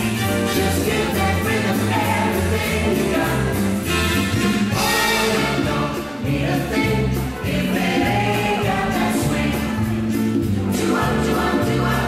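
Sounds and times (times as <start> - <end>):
quickstep dance music: 0.0 - 12.0.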